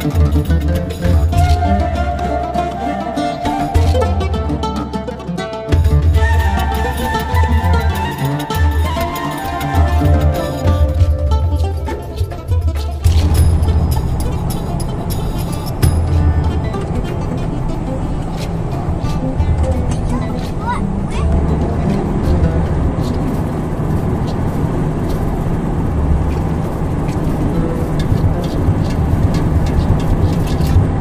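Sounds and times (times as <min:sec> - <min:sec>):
music playing: 0:00.0 - 0:23.8
road and engine rumble: 0:00.0 - 0:31.0
voices: 0:00.0 - 0:31.0.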